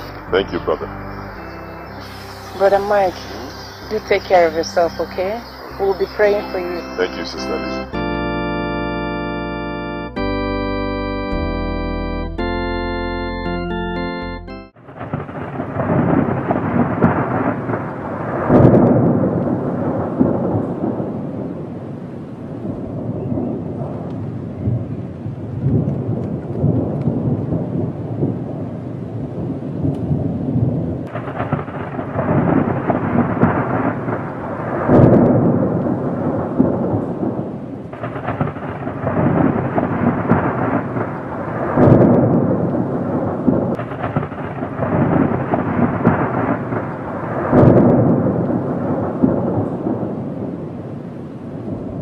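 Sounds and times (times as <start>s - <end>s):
steady rain: 0.0s - 8.0s, 14.8s - 52.0s
rumbling thunder: 0.0s - 8.4s, 14.8s - 52.0s.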